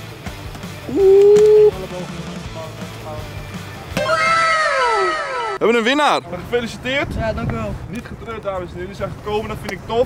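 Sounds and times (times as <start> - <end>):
falling ooh-like tone: 4.0 - 5.6.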